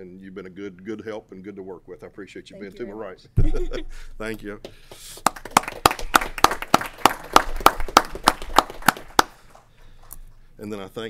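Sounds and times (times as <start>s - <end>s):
people clapping: 4.6s - 9.7s.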